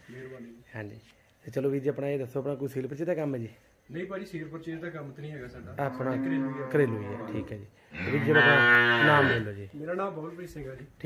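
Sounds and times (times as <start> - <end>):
cow mooing: 5.8 - 9.5.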